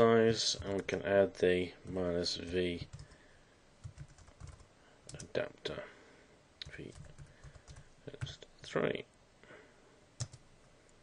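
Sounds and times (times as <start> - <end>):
keyboard typing: 2.8 - 3.2, 3.8 - 5.3, 6.6 - 8.4, 10.2 - 10.4.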